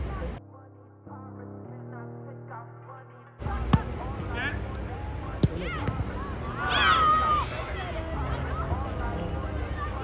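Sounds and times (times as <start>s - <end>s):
open-air noise: 0.0s - 10.0s
football kicked thud: 3.7s - 3.9s, 5.4s - 6.0s
young players shouting: 4.3s - 10.0s.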